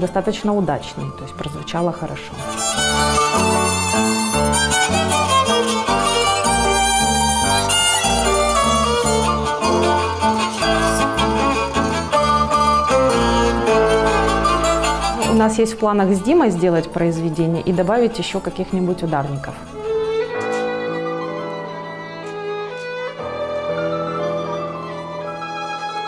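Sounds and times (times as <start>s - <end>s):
violin melody: 0.0s - 26.0s
plucked bass ukulele: 2.6s - 15.5s.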